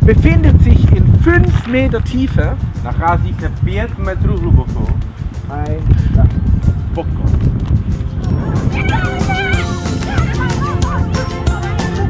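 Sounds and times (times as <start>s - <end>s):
background music with low beat: 0.0s - 12.0s
children shouting and squealing: 8.3s - 12.0s.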